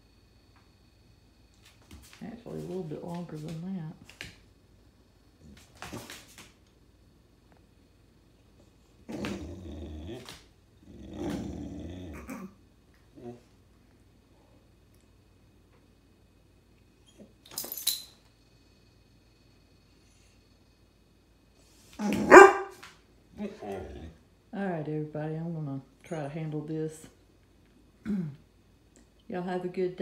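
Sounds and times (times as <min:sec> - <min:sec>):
dog grumbling: 0:09.0 - 0:12.6, 0:23.4 - 0:24.2
dog bark-yowl: 0:22.0 - 0:22.8.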